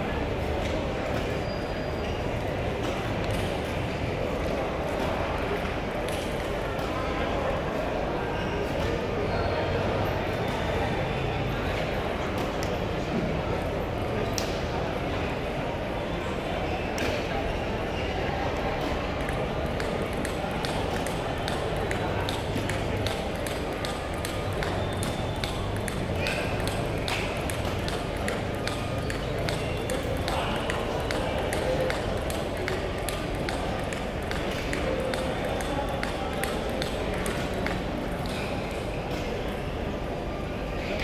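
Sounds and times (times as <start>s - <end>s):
murmur of voices: 0.0s - 41.0s
table tennis balls clicking: 18.9s - 38.9s.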